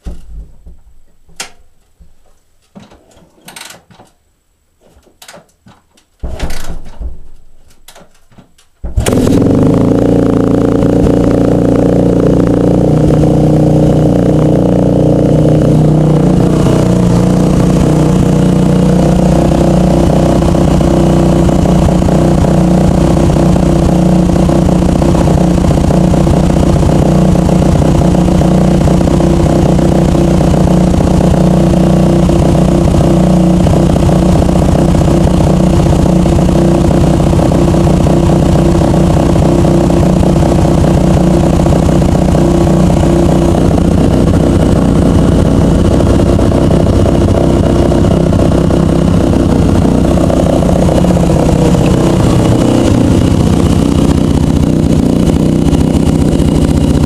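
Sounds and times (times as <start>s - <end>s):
motorcycle engine kick-started: 2.7s - 4.1s, 5.0s - 57.0s
motorcycle engine idling: 8.8s - 57.0s.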